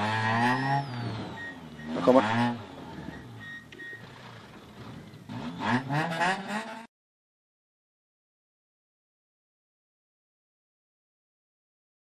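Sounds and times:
car engine running at low revs: 0:00.0 - 0:06.8
short electronic beep: 0:00.4 - 0:02.1, 0:03.0 - 0:04.1.

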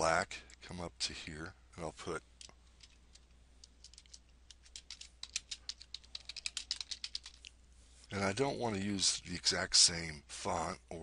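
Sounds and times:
keyboard typing: 0:03.7 - 0:07.5.

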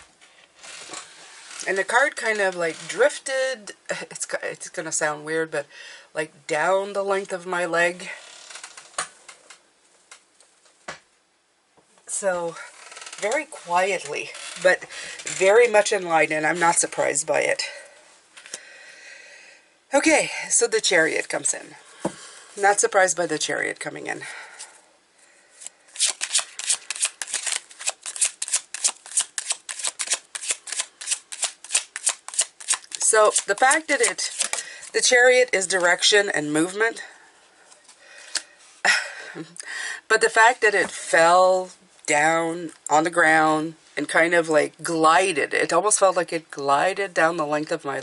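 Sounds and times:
cards rustling: 0:26.0 - 0:35.0.

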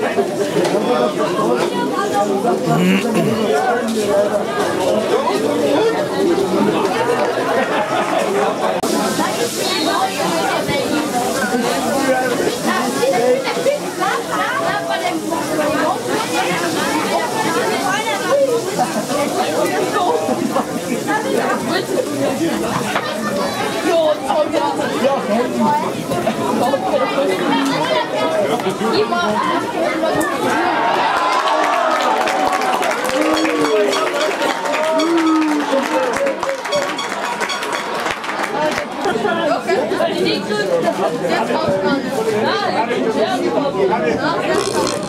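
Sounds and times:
indistinct chatter of spectators: 0:00.0 - 0:45.0.

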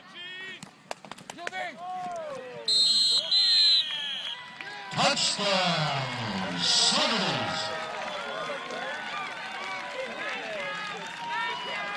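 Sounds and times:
people calling and shouting: 0:01.4 - 0:09.1
loud shout falling in pitch: 0:04.2 - 0:09.6.

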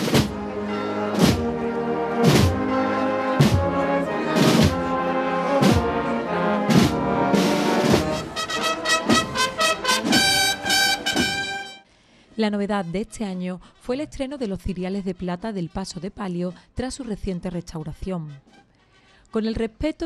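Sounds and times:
drum beat: 0:00.0 - 0:00.4, 0:01.1 - 0:01.6, 0:02.2 - 0:02.7, 0:03.4 - 0:03.8, 0:04.4 - 0:04.9, 0:05.6 - 0:06.0, 0:06.7 - 0:11.8
brass band playing a march: 0:00.0 - 0:11.8.

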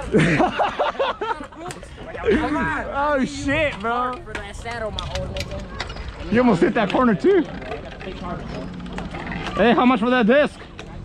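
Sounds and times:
bicycle rumble on concrete: 0:01.8 - 0:11.0.

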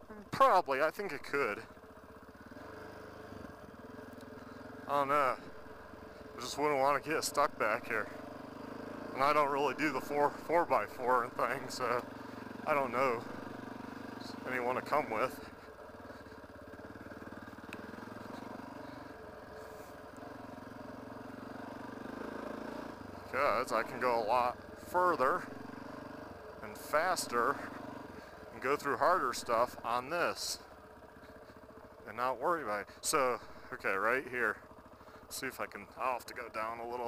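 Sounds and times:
motorcycle engine running: 0:00.0 - 0:37.0.

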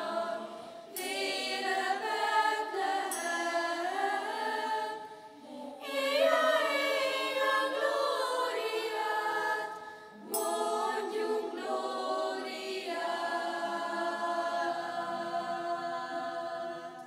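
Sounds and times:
choir singing unaccompanied: 0:00.0 - 0:17.0.

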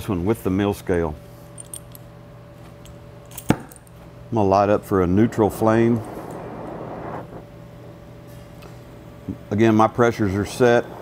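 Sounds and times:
steady low hum: 0:00.0 - 0:11.0
cutting torch igniting snap: 0:05.4 - 0:07.5.

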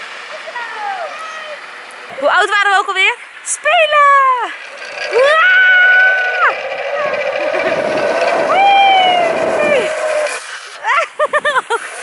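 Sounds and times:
ride rushing noise: 0:04.5 - 0:12.0
woman squealing: 0:05.1 - 0:06.6, 0:08.4 - 0:10.2
woman laughing: 0:10.8 - 0:12.0.

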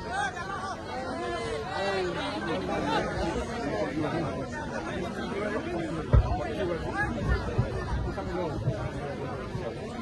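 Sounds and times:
chatter of many people: 0:00.0 - 0:10.0
low thump: 0:06.1 - 0:06.4.

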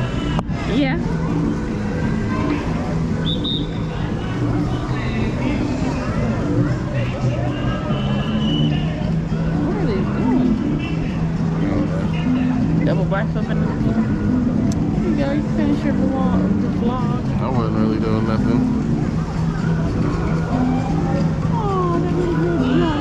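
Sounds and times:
background music with low bass: 0:00.0 - 0:23.0.

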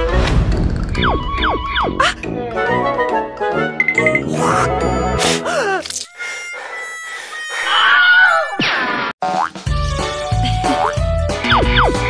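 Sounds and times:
thin held tones: 0:06.0 - 0:07.6.

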